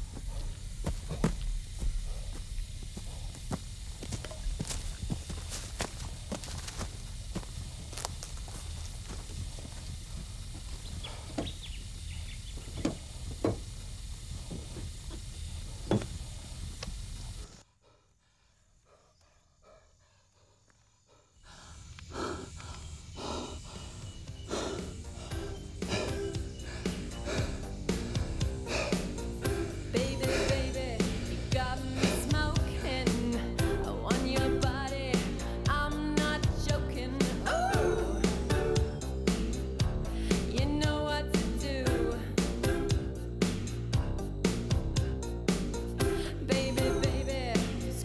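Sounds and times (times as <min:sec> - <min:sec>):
footsteps on dry ground: 0:00.0 - 0:17.6
low outdoor rumble: 0:00.0 - 0:17.6, 0:21.6 - 0:48.0
music: 0:24.2 - 0:48.0.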